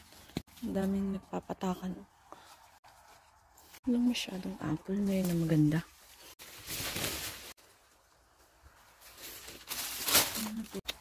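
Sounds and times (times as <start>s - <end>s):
rustling and crinkling handling noise: 2.3s - 11.0s.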